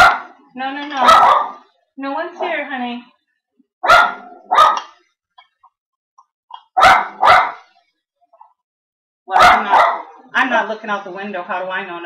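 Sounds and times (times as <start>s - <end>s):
dog barking: 0.0s - 0.4s, 1.0s - 1.7s, 3.8s - 5.0s, 6.6s - 7.7s, 9.3s - 10.2s.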